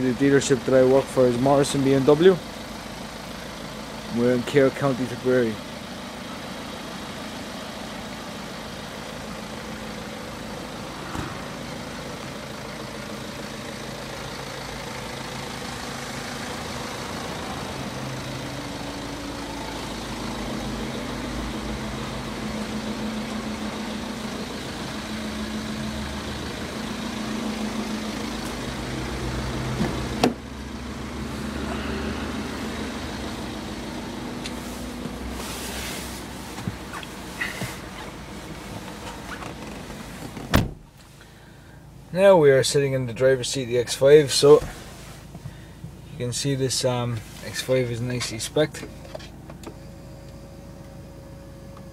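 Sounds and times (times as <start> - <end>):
car engine idling: 0.0 - 51.9
car door shutting: 11.0 - 11.6, 29.7 - 30.5, 34.5 - 41.1, 44.6 - 45.4.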